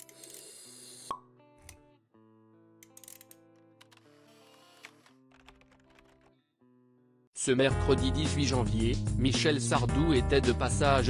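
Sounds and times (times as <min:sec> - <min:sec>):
soft background music chord: 0:06.7 - 0:11.0.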